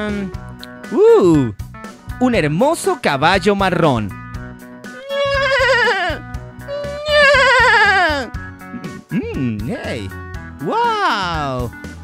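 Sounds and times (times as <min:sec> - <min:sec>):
background music: 0:00.0 - 0:12.0
horse whinnying: 0:04.9 - 0:08.3.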